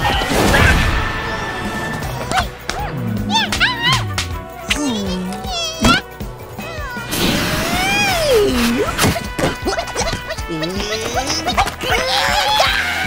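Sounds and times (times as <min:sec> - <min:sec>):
cartoon music: 0:02.2 - 0:13.0
wordless cartoon cries: 0:02.2 - 0:13.0.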